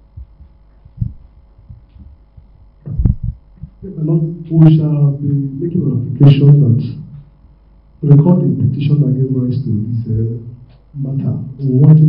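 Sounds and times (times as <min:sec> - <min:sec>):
microphone handling thumps: 0:00.0 - 0:04.1
faint electrical hum: 0:00.0 - 0:12.0.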